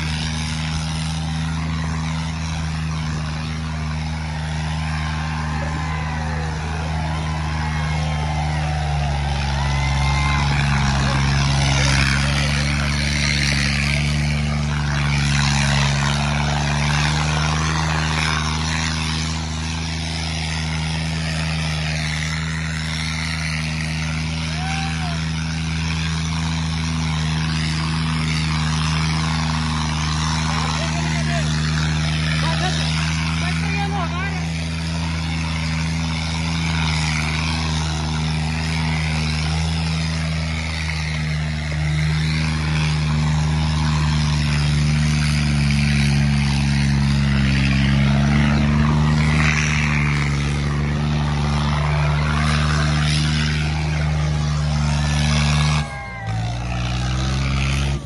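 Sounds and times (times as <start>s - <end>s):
crowd shouting and talking: 0.0s - 58.0s
tractor diesel engine under load: 0.0s - 58.0s.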